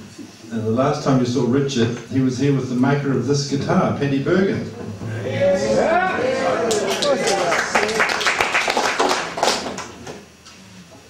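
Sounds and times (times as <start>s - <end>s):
audience clapping: 6.4s - 10.2s.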